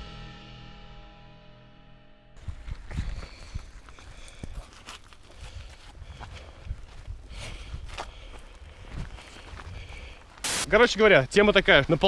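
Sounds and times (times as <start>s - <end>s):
footsteps on wet gravel trail: 2.4s - 12.0s.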